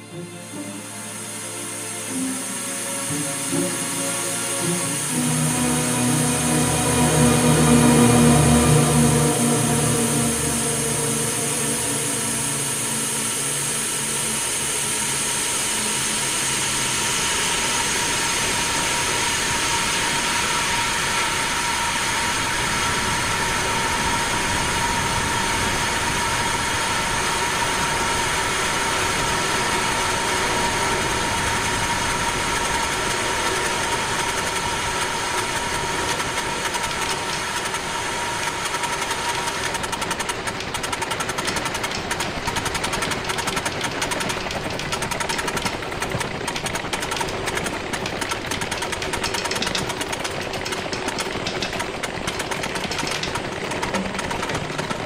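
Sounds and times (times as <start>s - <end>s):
steady high electronic tones: 0.0s - 14.9s
dense rushing electronic noise: 0.0s - 47.8s.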